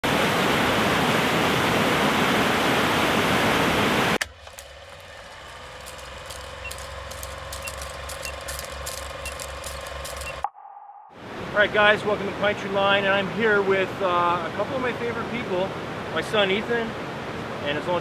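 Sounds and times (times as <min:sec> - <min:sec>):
movie projector clatter: 0:04.2 - 0:10.4
short high beeps: 0:06.6 - 0:11.2.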